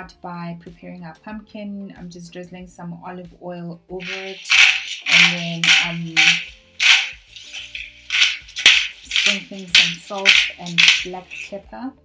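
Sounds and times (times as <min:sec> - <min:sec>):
faint background music: 0:00.0 - 0:12.0
salt grinder grinding: 0:04.0 - 0:11.6.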